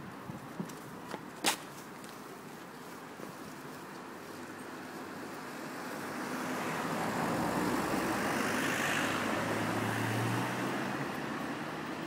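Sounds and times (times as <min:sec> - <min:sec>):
vehicle passing: 0:05.6 - 0:12.0.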